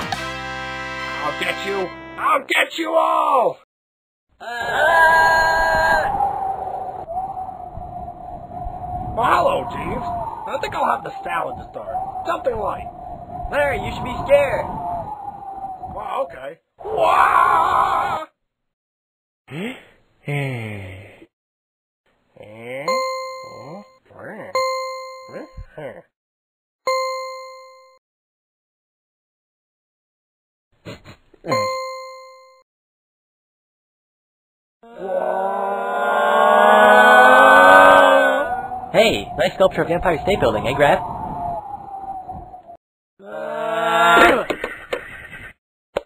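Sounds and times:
cartoon characters screaming: 4.4s - 6.2s, 16.8s - 18.3s, 34.8s - 38.7s, 43.2s - 44.4s
bell ding: 22.9s - 23.9s, 24.6s - 25.6s, 26.9s - 28.0s, 31.5s - 32.6s.

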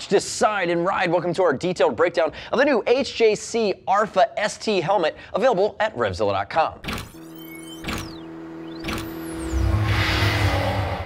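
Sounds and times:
held tone: 7.0s - 11.0s
whooshing pitch glides: 8.1s - 11.0s.

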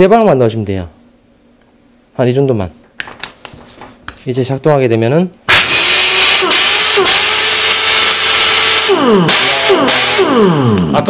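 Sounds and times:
impact wrench air hiss and whine: 5.5s - 11.0s.

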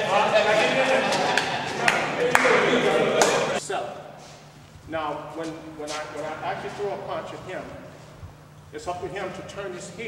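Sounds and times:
men laughing: 0.0s - 3.6s.

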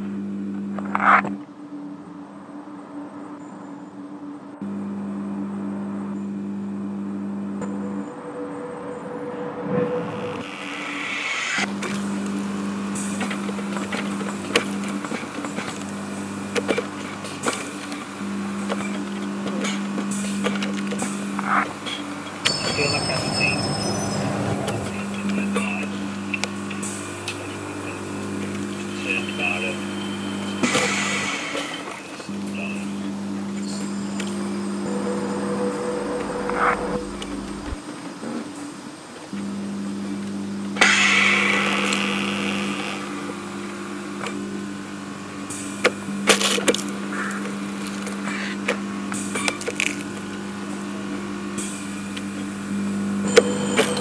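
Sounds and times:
low hum: 4.6s - 31.6s, 32.2s - 37.9s
thin high steady tones: 22.4s - 27.2s.

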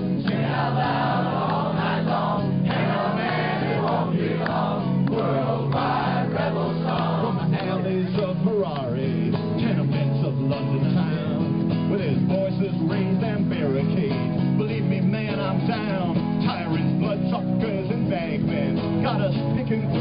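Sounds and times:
crowd voices: 0.0s - 15.9s
acoustic guitar strumming: 0.0s - 20.0s.

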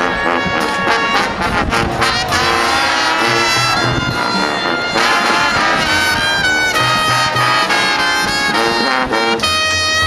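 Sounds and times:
marching band brass: 0.0s - 10.0s.

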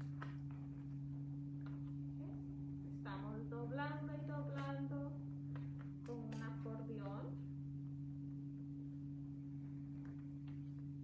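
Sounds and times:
low hum: 0.0s - 11.0s
woman speaking: 3.1s - 5.2s, 6.1s - 7.4s.

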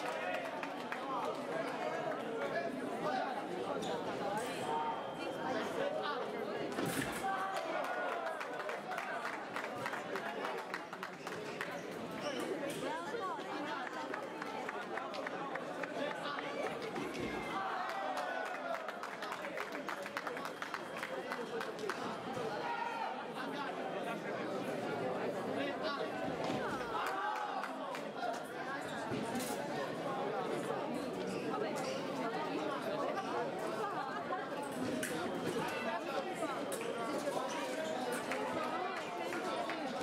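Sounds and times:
crowd chatter in echoing hall: 0.0s - 40.0s
babble of indistinct voices: 18.5s - 40.0s.

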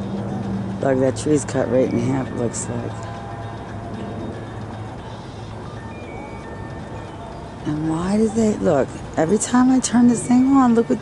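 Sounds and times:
quiet music with held tones: 0.0s - 11.0s
steady low hum: 0.0s - 11.0s.

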